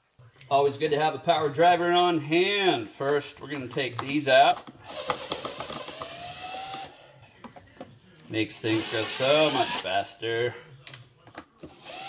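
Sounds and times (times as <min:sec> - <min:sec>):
impact driver whining: 0:04.5 - 0:06.9, 0:08.6 - 0:09.9, 0:11.6 - 0:12.0.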